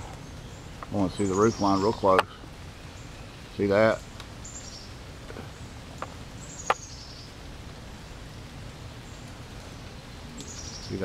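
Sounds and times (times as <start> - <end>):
bird chirping: 0.0 - 8.2, 8.9 - 11.0
outdoor background noise: 0.0 - 11.0.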